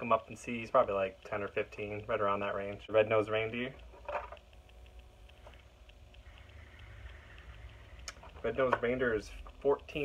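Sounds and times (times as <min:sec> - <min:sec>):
faint ticking: 0:00.0 - 0:10.0
light hiss: 0:00.0 - 0:10.0
low hum: 0:00.0 - 0:10.0.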